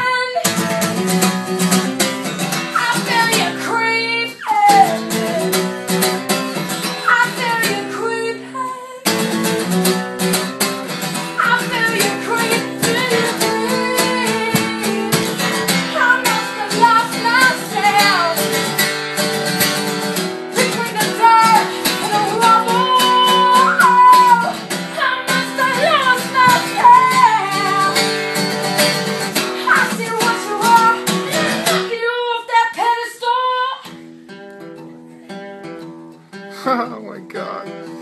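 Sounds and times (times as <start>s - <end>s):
woman singing: 0.0s - 1.4s, 2.3s - 5.9s, 6.8s - 10.4s, 11.0s - 34.1s
acoustic guitar strumming: 0.0s - 38.0s.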